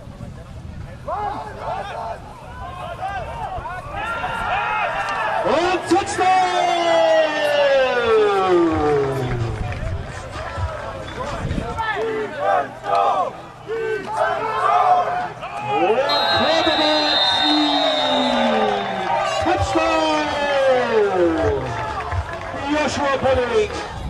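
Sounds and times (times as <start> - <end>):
crowd shouting and cheering: 1.0 - 24.0
steady high tone: 16.1 - 19.4.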